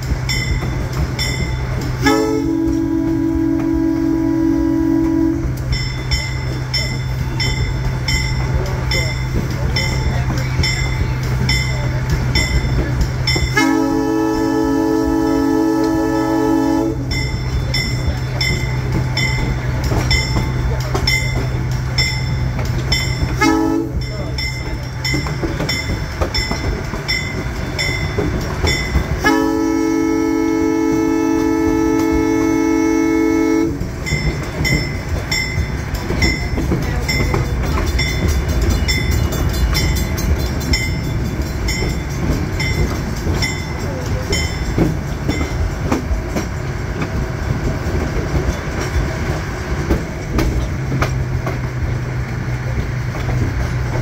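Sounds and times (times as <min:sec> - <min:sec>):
train rumbling: 0:00.0 - 0:54.0
locomotive horn blasts: 0:02.0 - 0:05.6, 0:13.5 - 0:17.3, 0:23.4 - 0:24.0, 0:29.2 - 0:33.9
bell ringing: 0:34.0 - 0:45.8.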